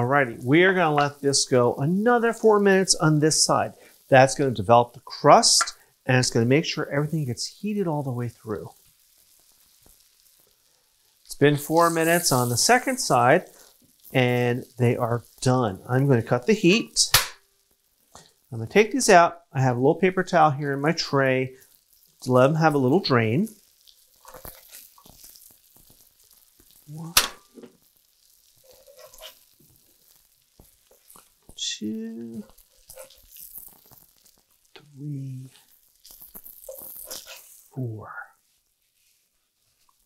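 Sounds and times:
food sizzling in oil: 0.0s - 19.5s, 20.1s - 40.0s
soft oil crackles: 0.1s - 40.0s.

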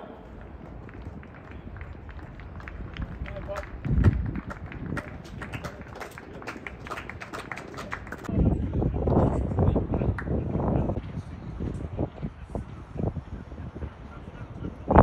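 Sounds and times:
faint voices: 4.5s - 15.0s.

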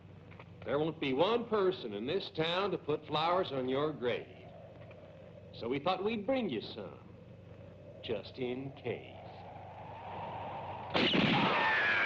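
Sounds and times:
pistol shot: 10.9s - 12.0s.

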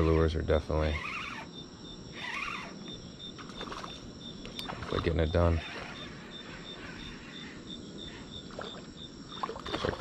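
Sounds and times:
high insect chirp: 0.0s - 10.0s
water lapping against dock: 8.3s - 10.0s.

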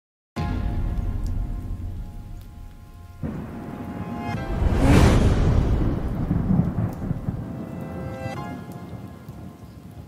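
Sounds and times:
rain-like hiss: 0.4s - 10.0s
thunder rumbling: 0.4s - 10.0s.

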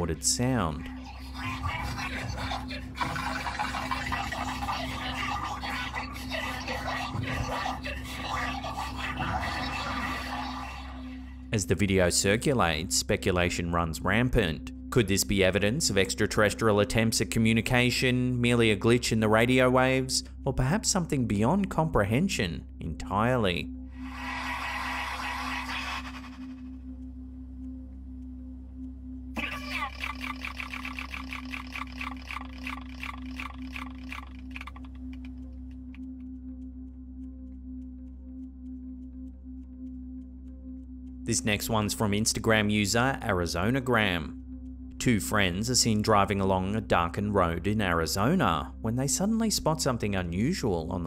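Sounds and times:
low steady drone: 0.0s - 51.0s
steady low hum: 0.0s - 51.0s.

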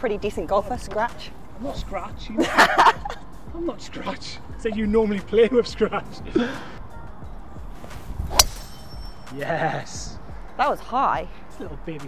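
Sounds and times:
golf driver striking ball: 8.3s - 8.9s.

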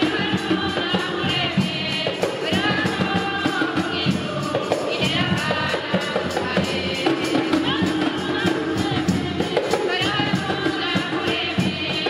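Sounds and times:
hand drums beating: 0.0s - 12.0s
women singing a hymn: 0.0s - 12.0s.

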